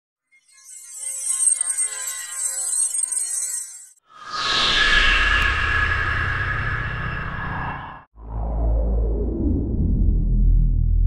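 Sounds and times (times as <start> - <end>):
glittering chime shimmer: 0.3 - 5.0
whoosh with falling sweep: 4.1 - 9.9
low rumble: 4.2 - 11.0.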